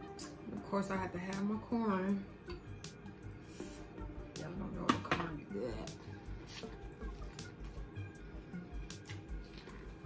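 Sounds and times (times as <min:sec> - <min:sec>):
background music: 0:00.0 - 0:10.0
chewing corn on the cob: 0:06.4 - 0:10.0.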